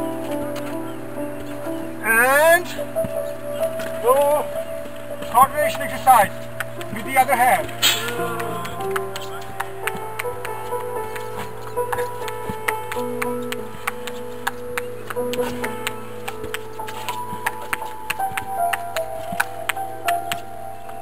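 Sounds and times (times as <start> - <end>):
background music with held notes: 0.0 - 21.0.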